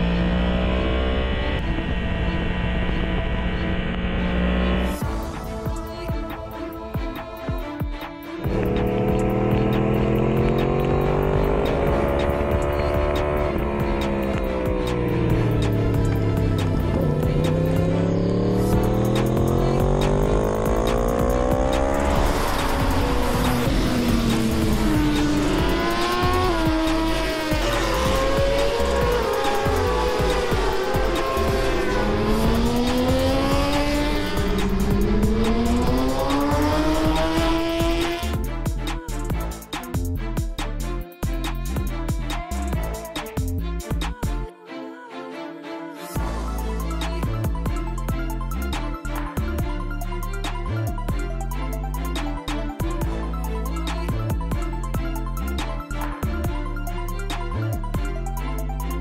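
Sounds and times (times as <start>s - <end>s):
racing motorcycle engines revving: 0.0s - 5.1s, 8.4s - 38.5s
music: 0.0s - 59.0s.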